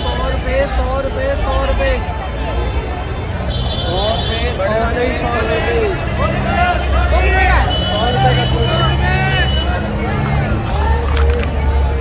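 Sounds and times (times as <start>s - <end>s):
crowd babble: 0.0s - 12.0s
low traffic rumble: 0.0s - 12.0s.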